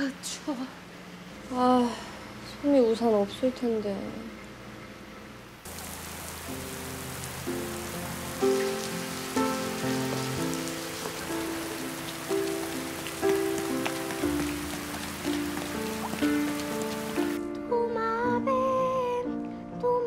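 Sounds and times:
rain falling on pavement: 5.7s - 17.4s
slow soft background music: 5.8s - 20.0s.

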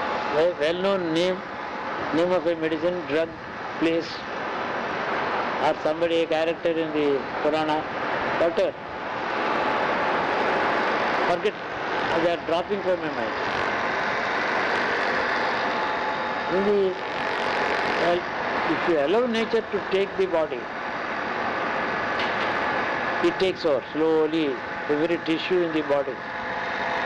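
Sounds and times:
faint high whine: 0.0s - 27.0s
steady rushing noise: 0.0s - 27.0s
people talking: 0.4s - 1.4s, 2.2s - 4.3s, 5.6s - 7.8s, 8.4s - 8.8s, 11.3s - 13.4s, 16.5s - 17.0s, 18.0s - 20.7s, 23.2s - 26.2s.

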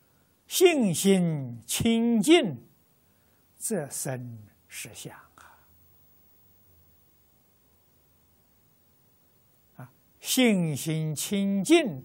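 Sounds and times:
low steady hum: 0.0s - 12.0s
elderly man speaking: 0.5s - 2.6s, 3.6s - 5.6s, 9.8s - 12.0s.

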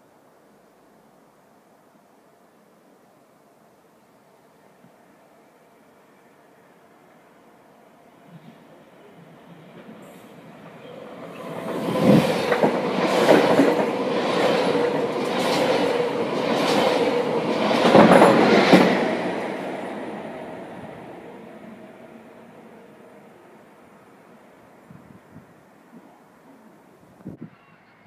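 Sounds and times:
train hum: 3.4s - 28.0s
train passing: 4.4s - 28.0s
wheels clacking over rail joints: 9.6s - 19.7s.

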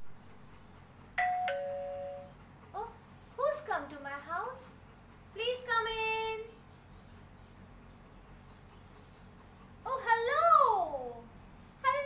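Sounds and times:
two-tone doorbell chime: 1.2s - 2.3s.

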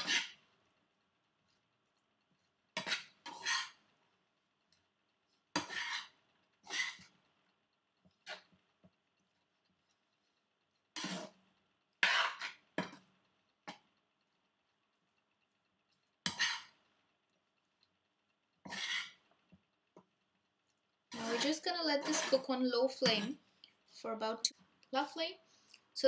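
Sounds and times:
spoon scraping a skillet: 0.0s - 0.6s, 1.4s - 4.0s, 5.2s - 20.1s, 20.8s - 25.0s.

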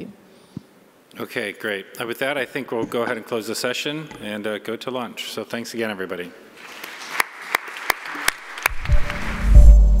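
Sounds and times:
hand claps: 6.7s - 9.4s.

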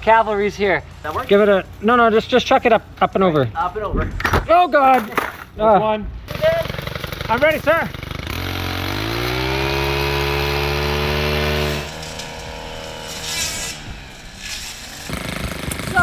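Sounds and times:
brushcutter engine revving: 6.3s - 16.0s.

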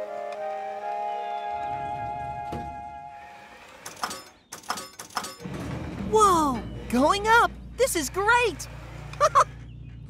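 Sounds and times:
background music: 0.0s - 3.8s
mechanical clicks and knocks: 3.7s - 5.9s.

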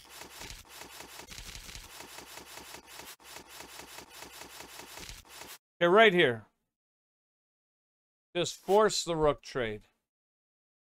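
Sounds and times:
rapid computer clicks: 0.0s - 5.6s.

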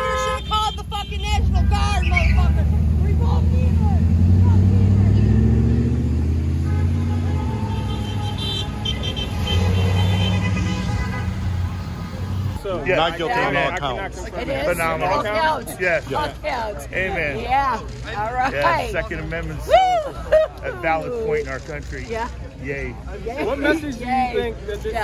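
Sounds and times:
vehicle horn toot: 0.0s - 1.6s, 6.6s - 12.6s
truck engine speeding up: 1.4s - 12.6s.

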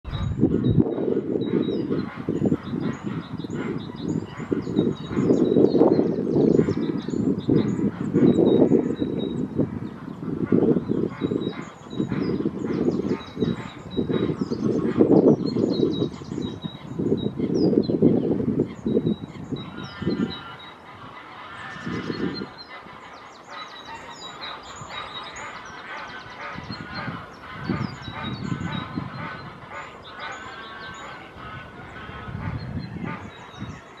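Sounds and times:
honking waterbird calls: 0.1s - 17.7s, 18.3s - 34.0s
small birds chirping: 0.1s - 34.0s.

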